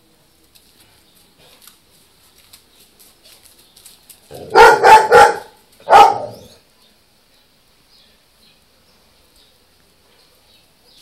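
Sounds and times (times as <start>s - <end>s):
dog barking: 4.4s - 6.6s.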